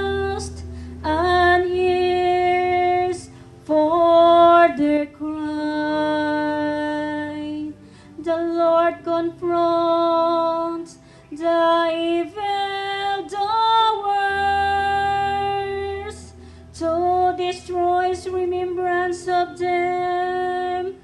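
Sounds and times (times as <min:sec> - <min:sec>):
soft sustained accompaniment chords: 0:00.0 - 0:21.0
woman singing a psalm: 0:00.0 - 0:21.0.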